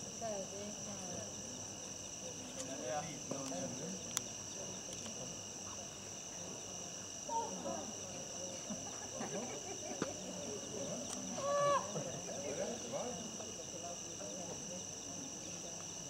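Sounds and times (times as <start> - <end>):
crickets chirring: 0.0 - 16.0
low voices: 2.3 - 15.9
soft laughter: 8.5 - 10.8.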